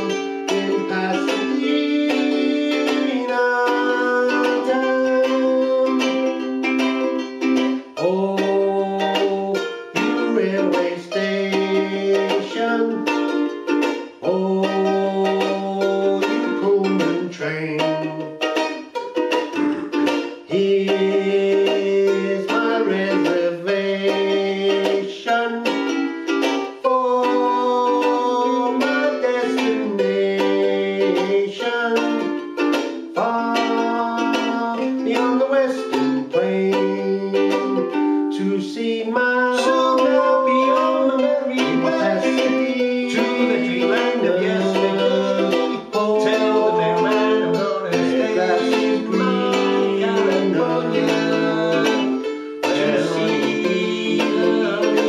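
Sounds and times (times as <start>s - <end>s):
man singing: 0.0s - 18.8s, 19.5s - 55.0s
ukulele strumming: 0.0s - 55.0s.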